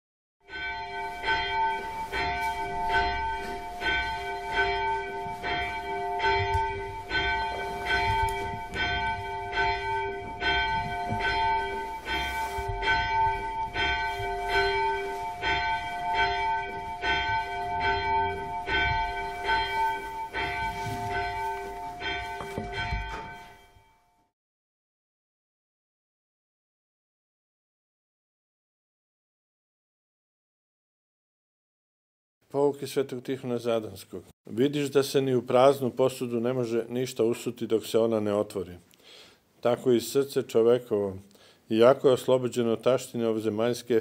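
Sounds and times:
church bells ringing: 0.4 - 24.3.

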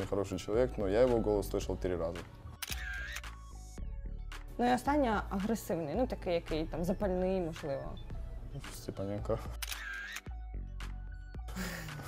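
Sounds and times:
background music: 0.0 - 12.0
camera shutter click: 2.6 - 3.4, 9.6 - 10.3.

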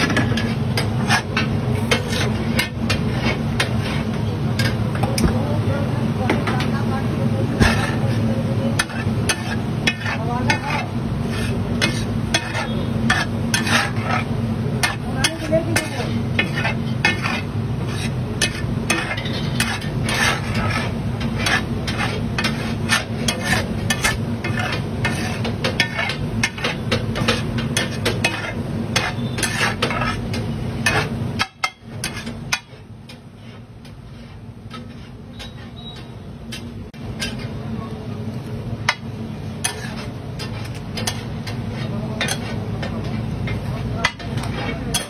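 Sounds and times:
metal spatulas scraping griddle: 0.0 - 37.9, 38.8 - 45.0.

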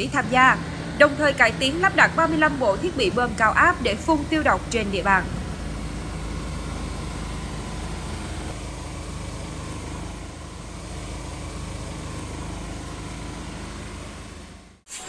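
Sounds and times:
truck engine running: 0.0 - 14.9.

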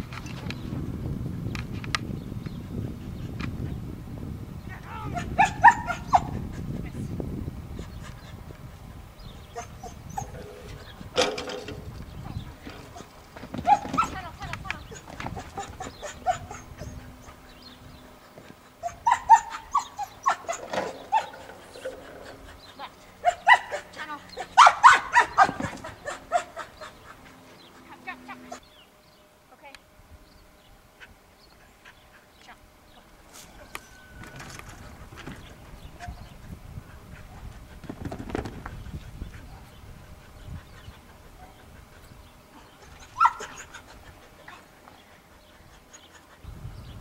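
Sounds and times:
dog barking: 5.1 - 6.4, 13.0 - 14.2, 15.8 - 16.9, 18.8 - 21.5, 23.2 - 26.9, 43.1 - 43.8.

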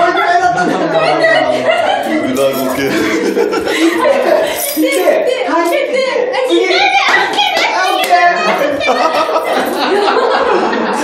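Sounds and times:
young women laughing and talking: 0.0 - 11.0
sharp hand claps: 7.0 - 8.2.

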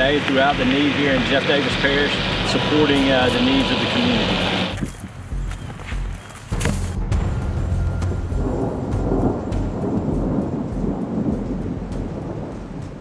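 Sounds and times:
rain: 0.0 - 4.8, 8.0 - 13.0
rolling thunder rumble: 7.2 - 13.0.

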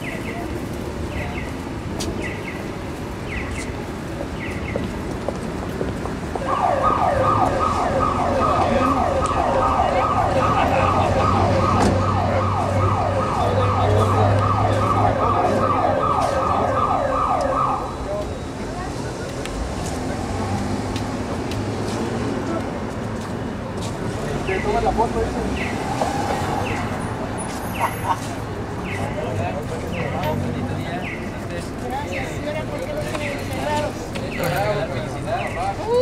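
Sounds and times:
street traffic: 0.0 - 36.0.

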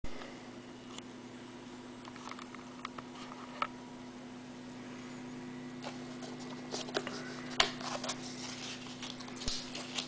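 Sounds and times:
steady low hum: 0.0 - 10.0
paper sleeve rustling: 5.8 - 10.0.

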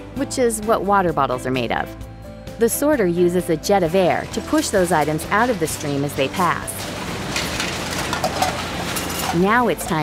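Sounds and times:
machinery and conveyor belts running: 4.0 - 10.0.

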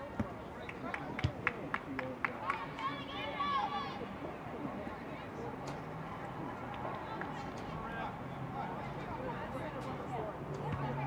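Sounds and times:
open-air background noise: 0.0 - 11.0.

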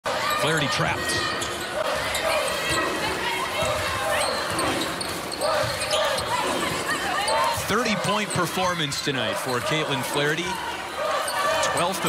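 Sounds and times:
crowd noise and voices: 0.0 - 12.0.

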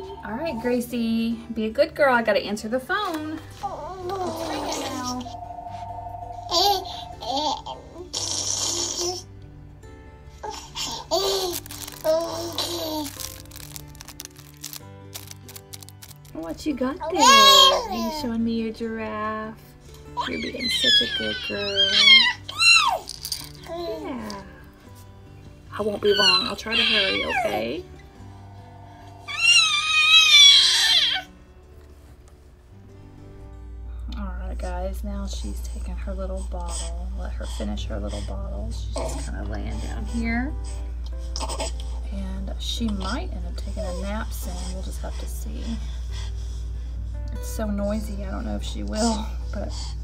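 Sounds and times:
faint background music: 0.0 - 50.0
high-pitched wavering squeal: 4.9 - 7.7.

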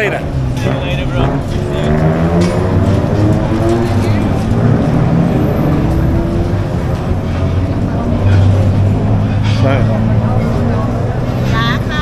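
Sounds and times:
people chattering: 0.0 - 12.0
road traffic rumble: 0.0 - 12.0.

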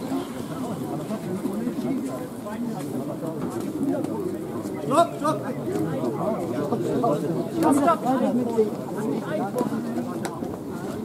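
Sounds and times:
men talking indistinctly: 0.0 - 11.0.

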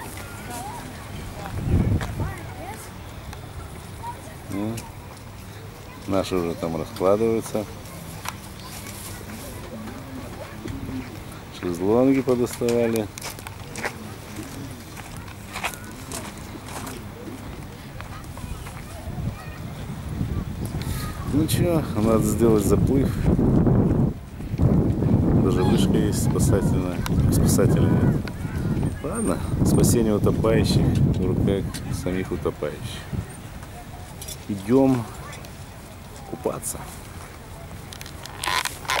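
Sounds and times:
distant people talking: 0.0 - 23.4, 25.0 - 39.0
outdoor background noise: 0.0 - 39.0
footsteps crunching on pebbles: 12.6 - 19.0.

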